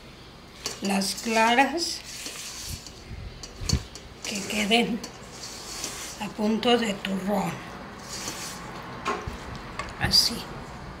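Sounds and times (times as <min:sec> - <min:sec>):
spatula scraping batter in bowl: 0:00.5 - 0:06.9, 0:08.0 - 0:08.7.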